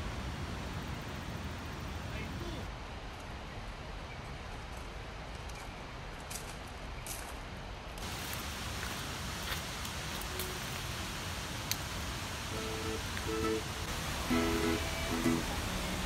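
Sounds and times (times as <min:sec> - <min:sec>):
outdoor background rush: 0:00.0 - 0:16.0
footsteps on gravel: 0:08.0 - 0:11.0.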